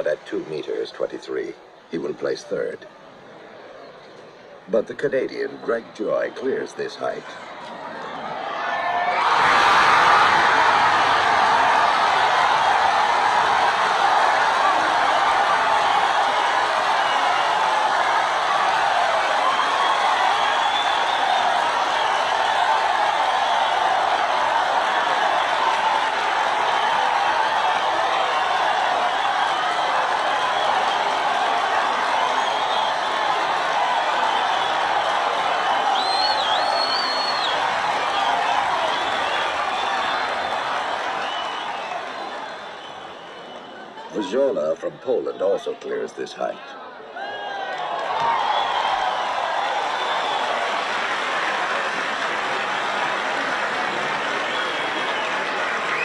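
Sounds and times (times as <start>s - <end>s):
crowd cheering and applauding: 5.6s - 56.0s.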